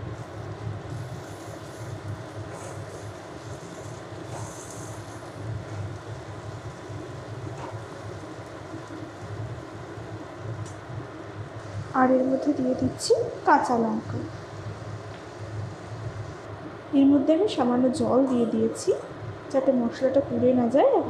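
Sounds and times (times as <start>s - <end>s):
food frying in oil: 0.0s - 16.5s
steady low hum: 0.0s - 21.0s.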